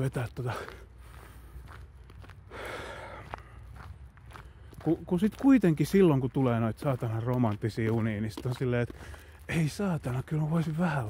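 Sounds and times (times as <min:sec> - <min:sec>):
footsteps walking: 0:00.0 - 0:11.0.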